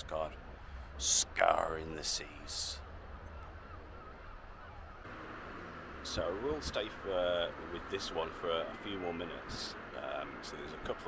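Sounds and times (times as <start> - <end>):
distant birds calling: 0.0 - 11.0.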